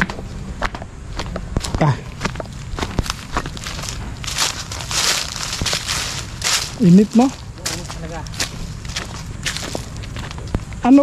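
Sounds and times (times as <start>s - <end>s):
footsteps crunching on dry leaves: 1.1s - 10.7s.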